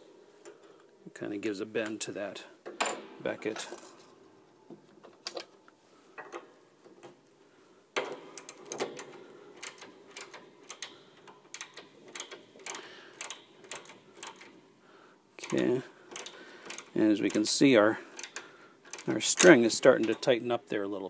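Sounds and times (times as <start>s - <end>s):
ratchet wrench clicking: 11.5s - 14.5s, 15.4s - 17.6s.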